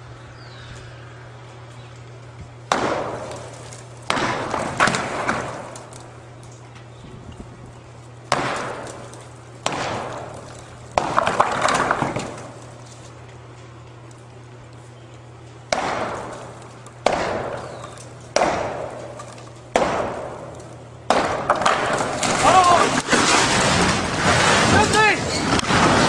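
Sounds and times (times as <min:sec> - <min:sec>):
hammer striking concrete: 0:02.7 - 0:05.8, 0:08.3 - 0:12.6, 0:15.7 - 0:23.1
crumbling rattling debris: 0:02.7 - 0:14.2, 0:15.8 - 0:26.0.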